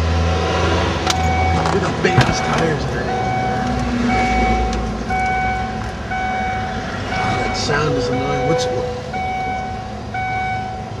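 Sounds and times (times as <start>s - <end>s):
electronic warning beeps: 1.2s - 10.9s.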